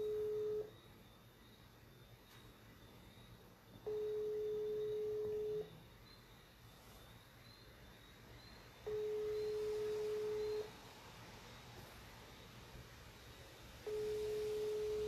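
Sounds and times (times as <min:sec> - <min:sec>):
telephone ringback tone: 0:00.0 - 0:00.7, 0:03.8 - 0:05.8, 0:08.9 - 0:10.8, 0:13.8 - 0:15.0.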